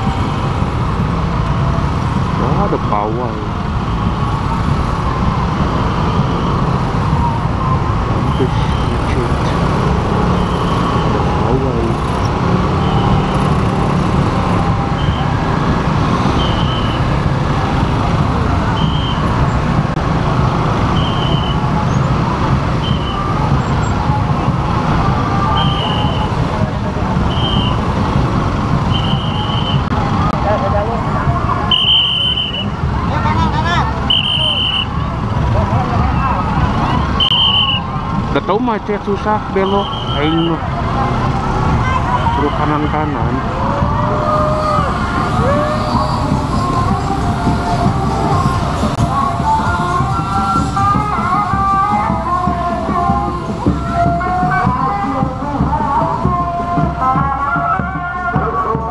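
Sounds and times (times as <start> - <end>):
traffic of motorcycles and cars: 0.0 - 58.9.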